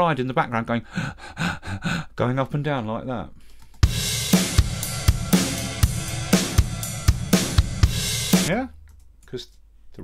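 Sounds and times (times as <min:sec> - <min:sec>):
pumping drum loop: 0:03.8 - 0:08.7.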